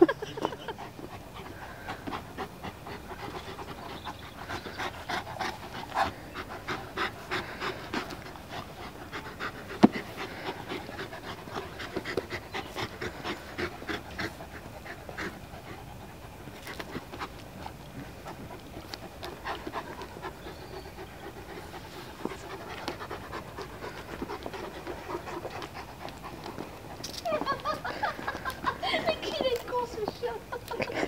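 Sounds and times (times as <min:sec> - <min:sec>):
dogs panting: 0:00.0 - 0:31.0.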